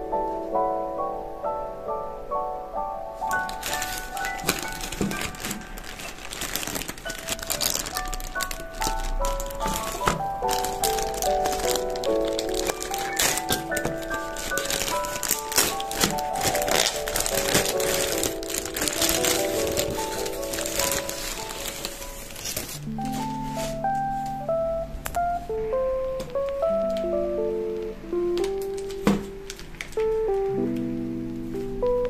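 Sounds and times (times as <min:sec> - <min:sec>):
light background music: 0:00.0 - 0:32.0
plastic bag crinkling: 0:03.3 - 0:24.0, 0:28.4 - 0:30.4.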